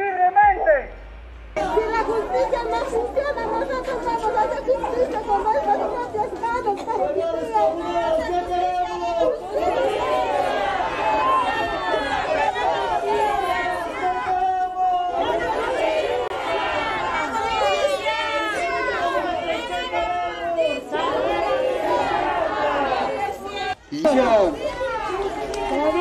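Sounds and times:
crowd talking and calling out: 0.0s - 26.0s.

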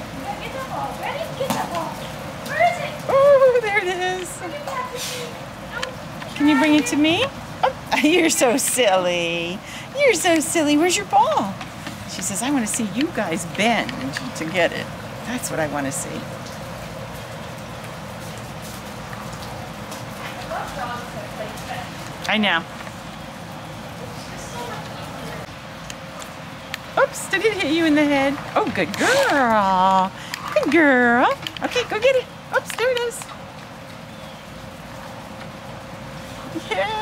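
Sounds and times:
fine drips: 0.0s - 37.0s
steady rain falling: 0.0s - 37.0s.

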